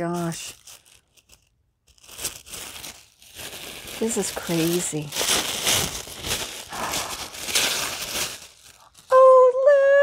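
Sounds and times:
tissue paper rustling: 0.0 - 9.7.

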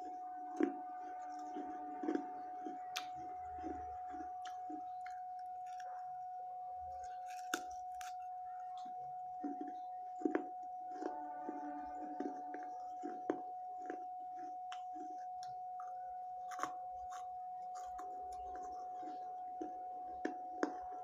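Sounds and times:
clay being chewed and crunched: 0.0 - 21.0
steady high hum: 0.0 - 21.0.

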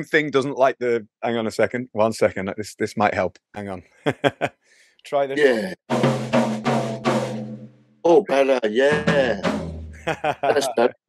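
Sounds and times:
tom-tom drum hits ringing: 5.9 - 7.8, 8.9 - 10.0.

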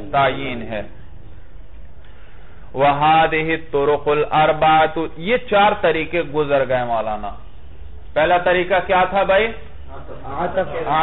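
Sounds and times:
man speaking in monotone: 0.0 - 1.0, 2.7 - 7.4, 8.1 - 11.0.

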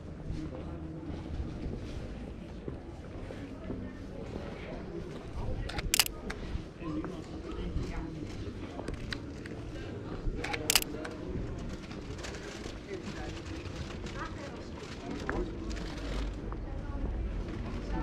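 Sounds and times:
people talking: 0.0 - 18.0
street ambience: 0.0 - 18.0
camera shutter clicking: 5.7 - 6.1, 10.6 - 10.9.

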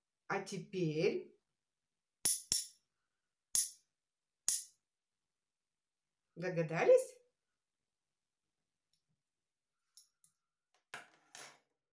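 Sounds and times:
metal spoons set on table: 10.0 - 11.7.

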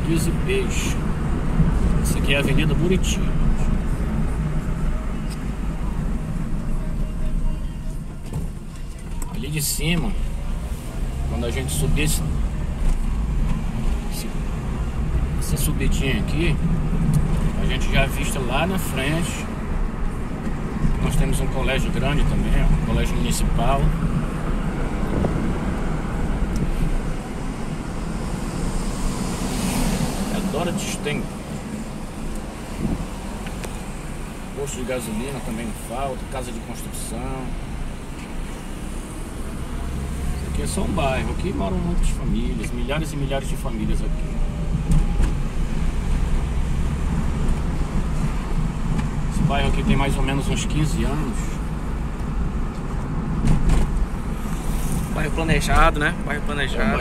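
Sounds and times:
engine and tyres rumbling: 0.0 - 57.0
wind noise: 23.9 - 30.4, 31.2 - 33.4.

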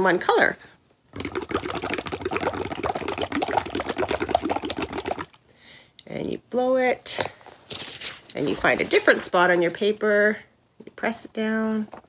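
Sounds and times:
bubbling through a straw: 1.1 - 5.4.

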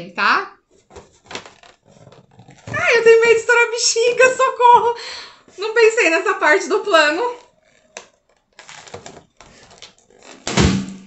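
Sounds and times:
hands rubbing balloon: 0.7 - 5.0
balloon popping: 0.9 - 5.0, 6.0 - 11.0.

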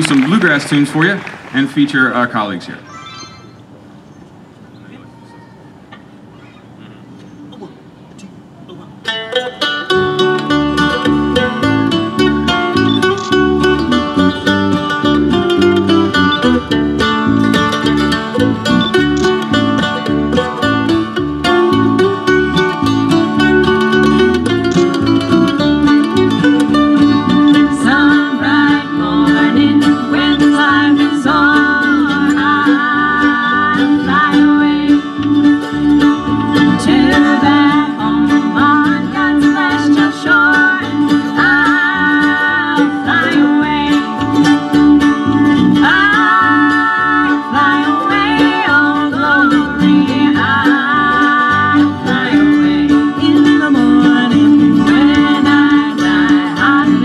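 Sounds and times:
bluegrass band playing: 0.0 - 4.0, 6.0 - 57.0
voices singing: 26.4 - 57.0.

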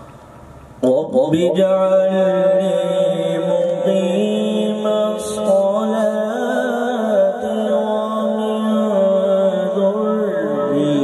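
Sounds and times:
man reciting melodically: 0.8 - 11.0.

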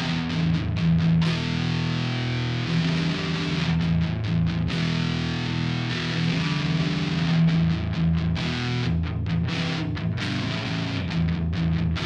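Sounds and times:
electric guitar chords ringing: 0.0 - 12.0.

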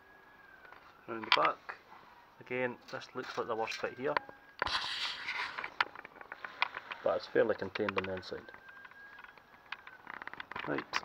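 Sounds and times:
fabric rubbing over microphone: 4.6 - 5.8
light clicks and taps: 7.6 - 11.0.

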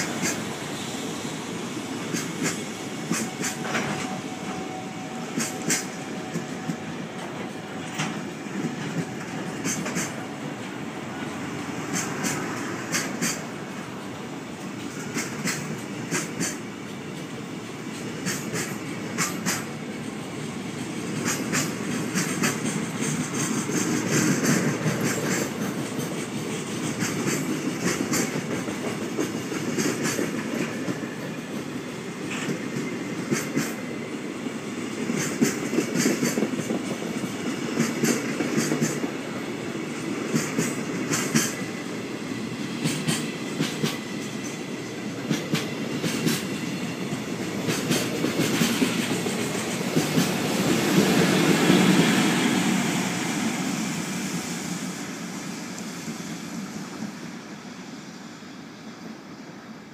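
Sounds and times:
freight train rumbling past: 0.0 - 59.9
wheels clacking over rail joints: 2.0 - 52.8.

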